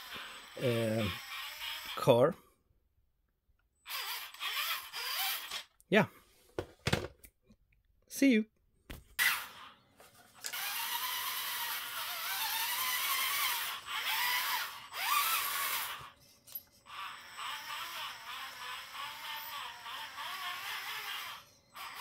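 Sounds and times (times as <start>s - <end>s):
electric motor and gears whining: 0.0s - 2.2s, 3.8s - 5.8s, 9.2s - 22.0s.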